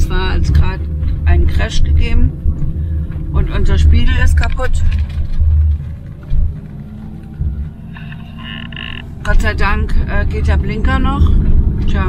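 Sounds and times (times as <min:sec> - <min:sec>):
engine and road rumble: 0:00.0 - 0:12.0.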